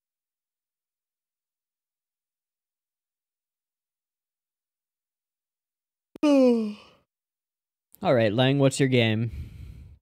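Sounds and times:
man sighing: 0:06.2 - 0:07.0.

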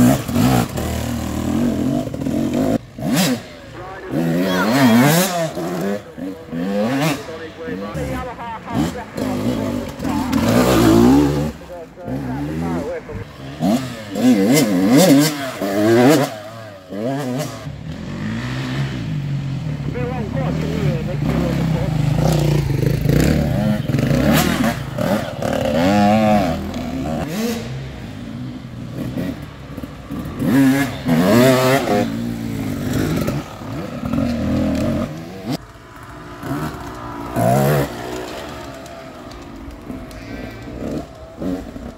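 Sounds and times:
dirt bike engines revving past: 0:00.0 - 0:41.9.

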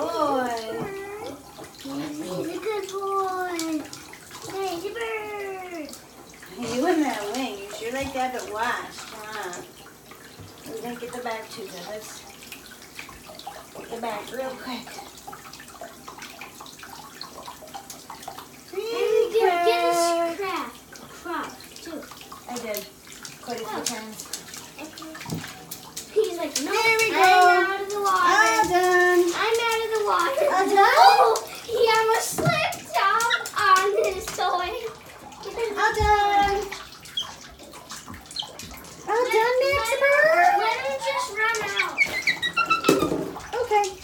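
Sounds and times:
shower spray running: 0:00.0 - 0:44.0.

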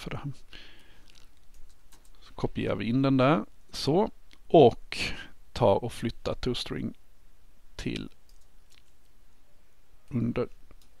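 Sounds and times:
faint keyboard clicks: 0:00.8 - 0:02.2, 0:07.8 - 0:09.2, 0:10.6 - 0:11.0.

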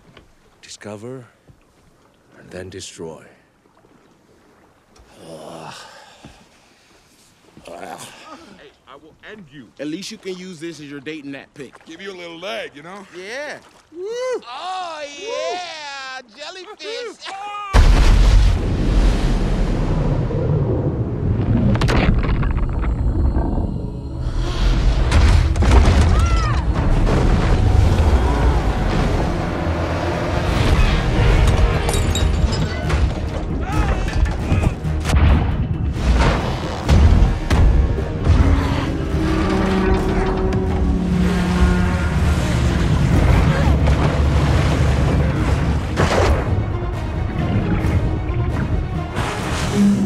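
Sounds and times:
rushing seawater and waves: 0:00.0 - 0:09.1, 0:17.8 - 0:21.8, 0:24.2 - 0:35.0, 0:35.8 - 0:50.0
dramatic film score: 0:16.2 - 0:50.0
huge splash with deep boom: 0:17.8 - 0:23.4, 0:24.7 - 0:32.2, 0:34.9 - 0:38.9, 0:42.0 - 0:48.2.

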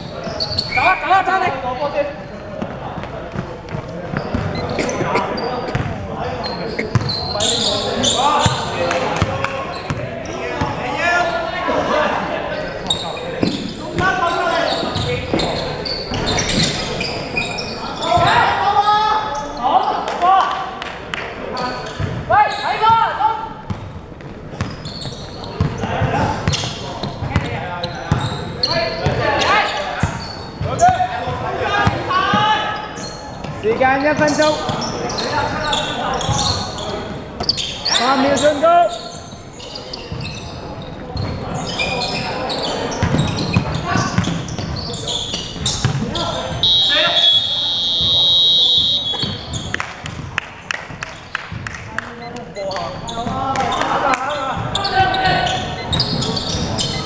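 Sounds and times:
players calling out: 0:24.6 - 0:50.3, 0:51.8 - 0:57.0.

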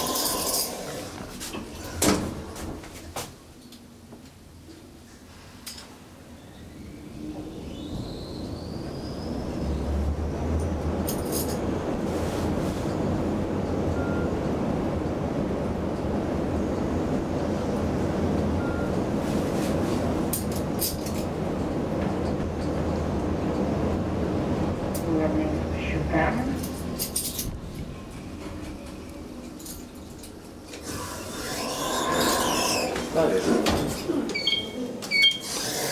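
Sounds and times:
elevator air rush and hum: 0:04.0 - 0:35.7.

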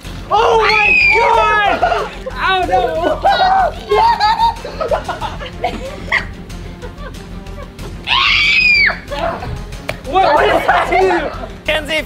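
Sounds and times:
background music: 0:00.0 - 0:12.0
person screaming: 0:00.3 - 0:02.1.

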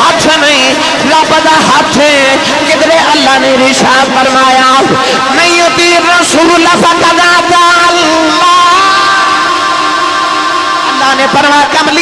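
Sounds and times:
man singing over loudspeaker: 0:00.0 - 0:12.0.

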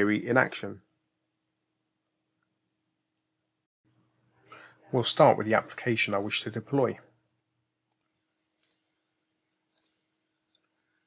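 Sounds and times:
computer mouse clicks: 0:07.9 - 0:08.9, 0:09.7 - 0:10.7.

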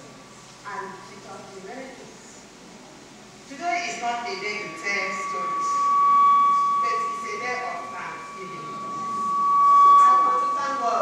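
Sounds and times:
microphone feedback whistling: 0:03.5 - 0:11.0
woman talking into microphone: 0:06.8 - 0:09.1, 0:09.9 - 0:11.0.

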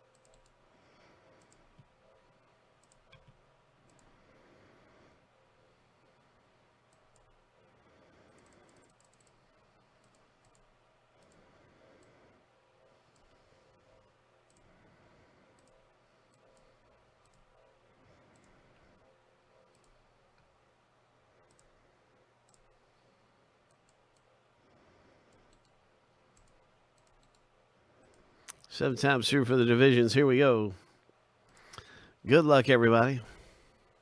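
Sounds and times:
keyboard clicks: 0:00.0 - 0:00.6, 0:02.8 - 0:04.1, 0:08.3 - 0:12.2, 0:15.5 - 0:18.6, 0:19.6 - 0:20.5, 0:21.4 - 0:21.7, 0:25.3 - 0:28.7
computer mouse clicks: 0:00.0 - 0:04.2, 0:06.9 - 0:07.4, 0:08.1 - 0:20.6, 0:21.3 - 0:28.7
low room hum: 0:00.0 - 0:34.0.

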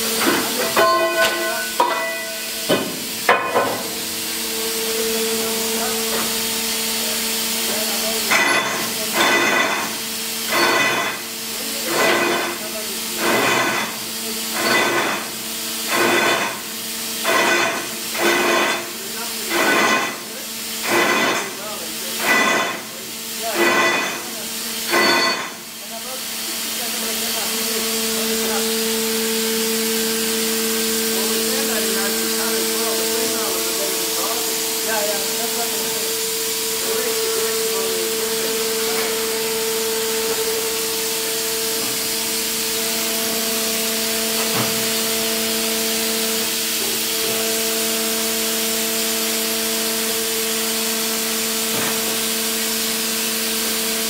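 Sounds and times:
hydraulic drill rig hissing: 0:00.0 - 0:54.0.

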